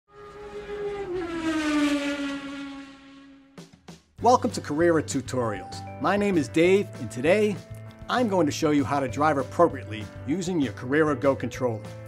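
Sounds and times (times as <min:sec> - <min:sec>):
car engine passing by: 0:00.1 - 0:03.6.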